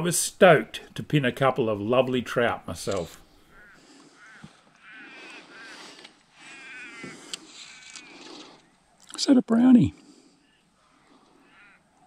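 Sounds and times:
crow cawing: 3.4s - 8.7s, 10.3s - 12.0s.

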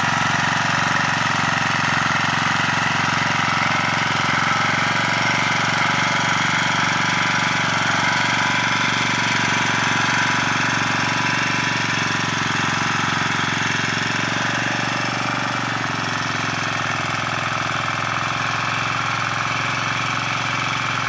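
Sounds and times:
tiller engine running: 0.0s - 21.0s.

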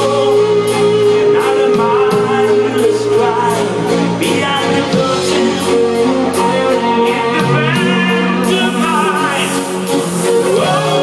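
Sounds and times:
drums beating steady rhythm: 0.0s - 11.0s
rock band playing live: 0.0s - 11.0s.

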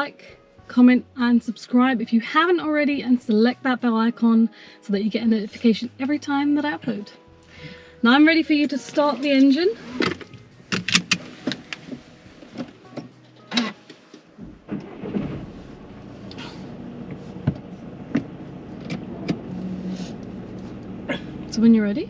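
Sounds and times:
car engine starting and idling: 7.6s - 22.0s
car control clicks: 10.0s - 12.0s.

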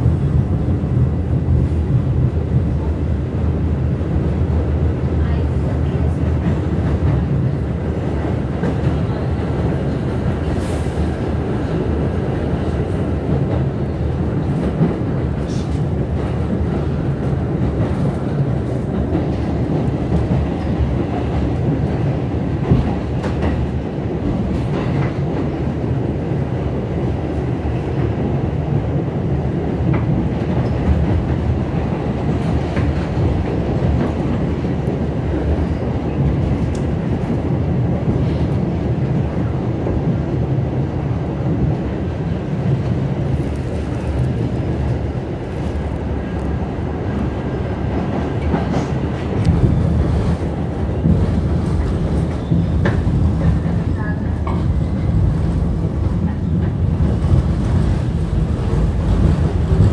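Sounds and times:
subway train low rumble: 0.0s - 59.9s.

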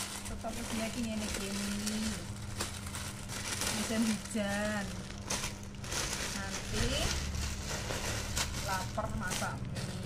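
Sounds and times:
plastic bag rustling: 0.0s - 10.0s
plastic-wrapped packet handled: 0.0s - 10.0s.

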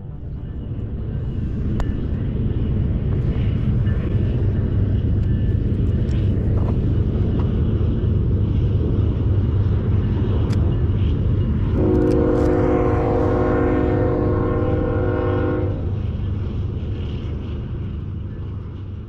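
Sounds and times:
train rumbling: 0.0s - 19.0s
train horn chord: 11.7s - 16.0s.

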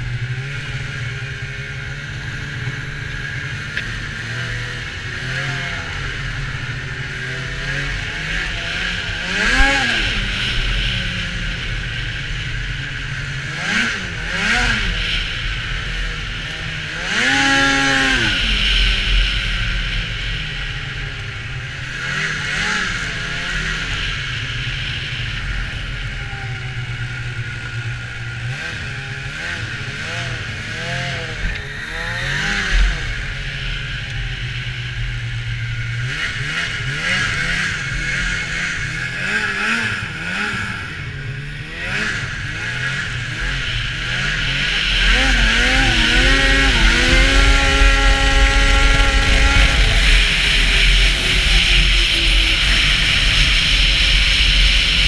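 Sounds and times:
snowmobile engine revving: 0.0s - 55.0s.

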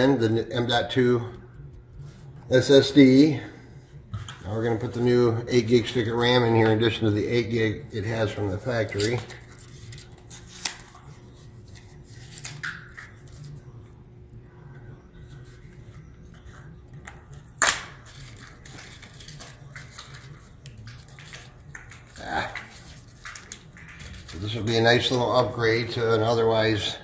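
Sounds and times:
faint low hum: 0.0s - 27.0s.

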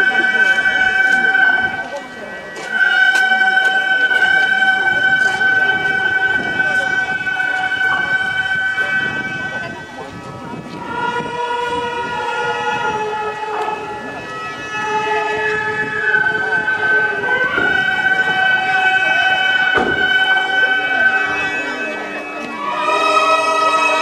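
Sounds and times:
reed and flute ensemble melody: 0.0s - 24.0s.

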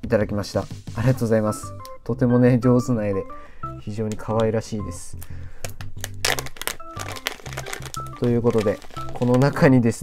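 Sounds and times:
background music: 0.0s - 10.0s
plastic bag crinkling: 6.0s - 10.0s.

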